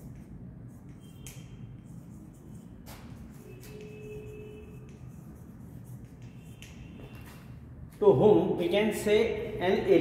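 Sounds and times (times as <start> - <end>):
chalk scratching on blackboard: 0.0 - 7.5
low steady room hum: 0.0 - 10.0.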